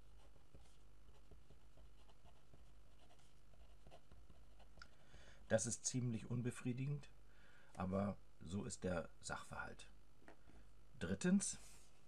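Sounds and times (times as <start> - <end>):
pen scratching on paper: 0.0 - 4.8.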